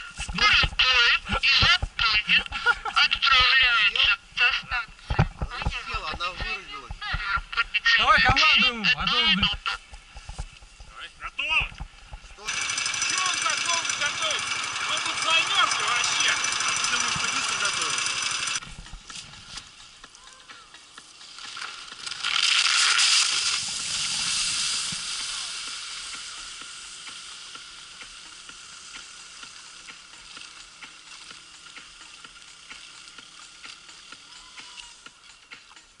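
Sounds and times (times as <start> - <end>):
voices: 0.0 - 10.0, 10.9 - 18.6.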